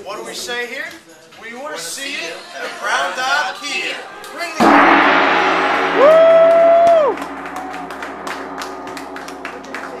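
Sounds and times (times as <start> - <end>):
gong ringing: 4.6 - 10.0
hand clapping: 7.6 - 10.0.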